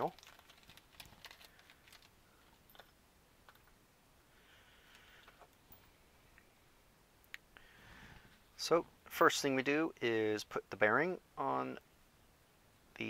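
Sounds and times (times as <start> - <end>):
plastic bag crinkling: 0.0 - 2.9.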